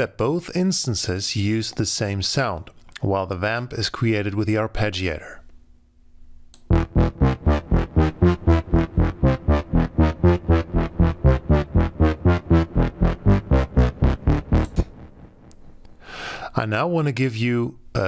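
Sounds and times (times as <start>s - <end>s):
synthesizer bass pattern: 6.7s - 15.6s.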